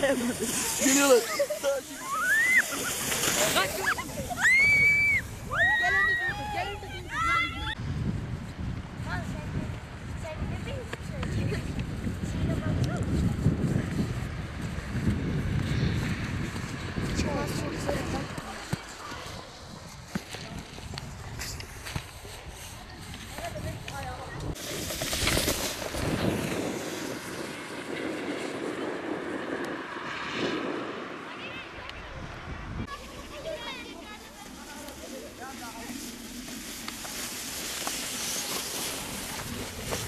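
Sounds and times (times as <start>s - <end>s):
loud hiss: 0.0s - 5.5s
wind rumble on microphone: 2.4s - 40.0s
children's voices and shouts: 3.6s - 7.8s, 32.8s - 35.3s.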